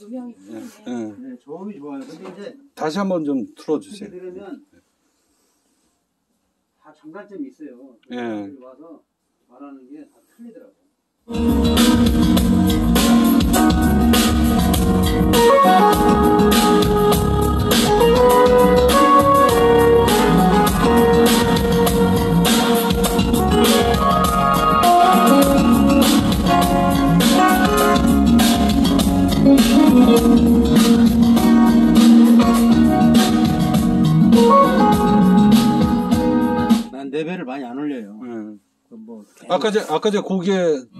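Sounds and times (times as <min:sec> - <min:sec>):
loud music with guitar and drums: 0:11.3 - 0:36.9.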